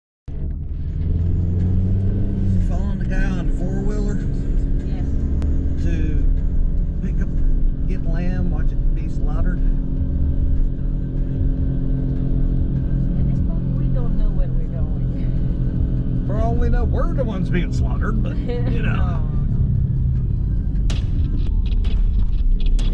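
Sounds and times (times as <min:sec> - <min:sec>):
car engine and road rumble: 0:00.3 - 0:22.9.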